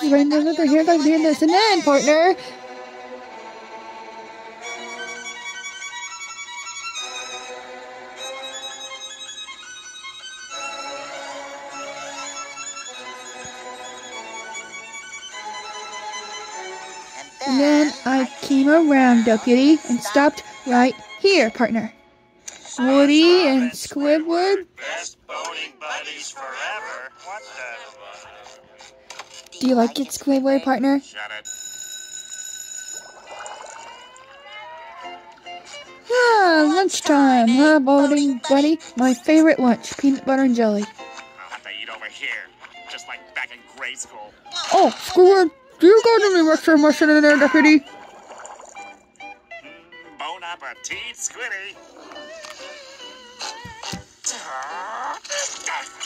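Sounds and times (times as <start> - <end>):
fiddle melody: 0.0 - 21.9
high ringing tone: 31.4 - 34.3.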